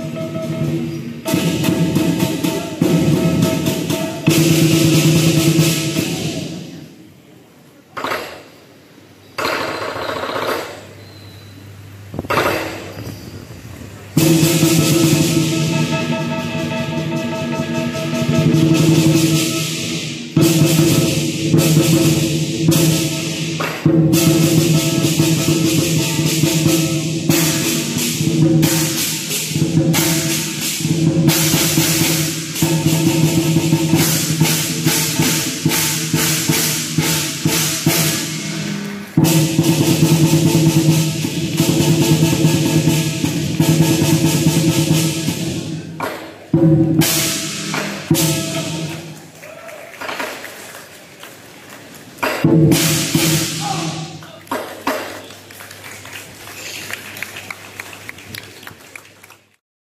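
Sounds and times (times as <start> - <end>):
hand cymbals clashing: 0.0 - 6.8, 14.2 - 45.8, 47.0 - 49.1
large drum beaten fast: 0.0 - 6.8, 14.1 - 49.1, 52.3 - 54.2.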